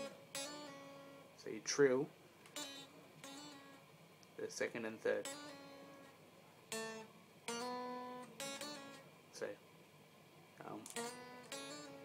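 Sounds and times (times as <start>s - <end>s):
electric guitar notes: 0.0s - 1.9s, 2.5s - 9.5s, 10.8s - 12.0s.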